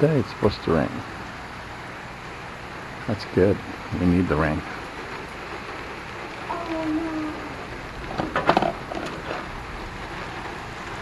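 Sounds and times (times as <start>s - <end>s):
rain on concrete: 0.0s - 11.0s.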